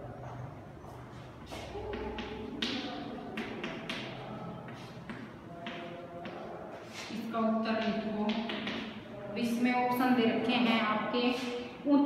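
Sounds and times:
chalk tapping and scraping on blackboard: 1.5s - 9.0s.

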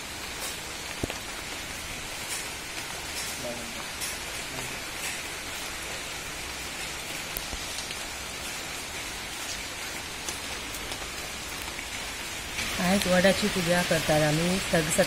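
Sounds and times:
steady rain falling: 0.0s - 15.0s
water drips ticking: 0.2s - 15.0s.

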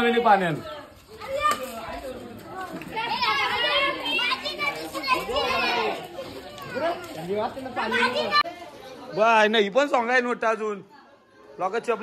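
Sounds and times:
children shouting at play: 0.0s - 9.3s, 10.8s - 12.0s.

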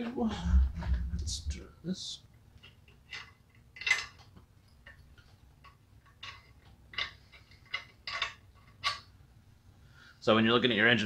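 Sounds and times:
metal parts clicking: 2.6s - 9.1s.

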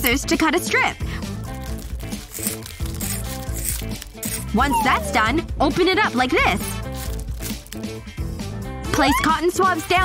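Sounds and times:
background music: 0.0s - 10.0s
scissors snipping plastic: 1.4s - 4.5s, 6.8s - 7.9s.

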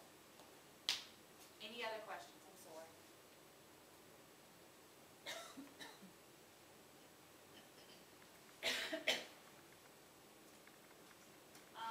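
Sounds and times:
person coughing: 5.3s - 6.1s, 8.6s - 9.3s.

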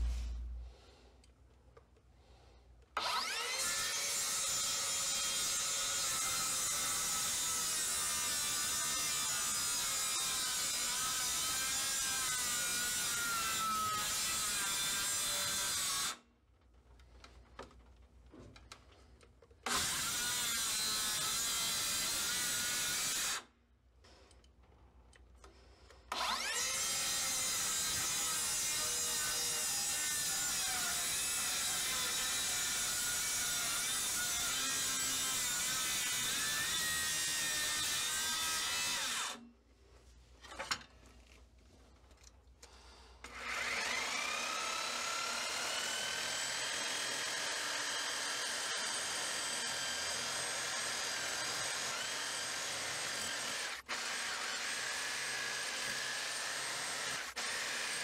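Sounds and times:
reciprocating saw whining: 3.0s - 7.4s, 26.1s - 39.4s, 43.3s - 58.0s
circular saw cutting wood: 3.0s - 16.2s, 19.6s - 23.5s, 26.1s - 39.4s, 43.2s - 58.0s
click: 24.2s - 26.0s.

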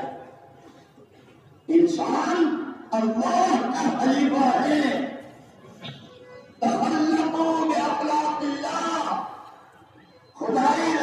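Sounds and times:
man's voice in held phrases: 1.7s - 5.2s, 6.6s - 9.4s, 10.4s - 11.0s.

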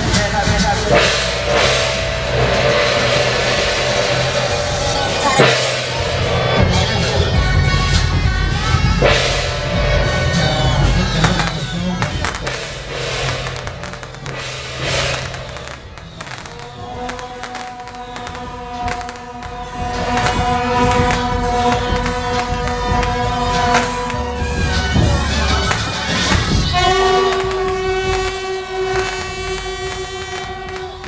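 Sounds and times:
heavy low drumming: 0.0s - 31.0s
procession music: 0.0s - 31.0s
sharp cracks: 0.0s - 31.0s
held tone of several notes: 0.8s - 31.0s.

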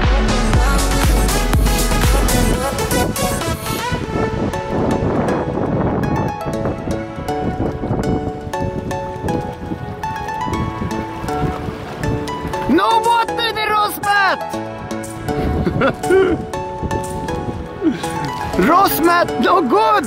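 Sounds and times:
background music with beat: 0.0s - 19.4s.

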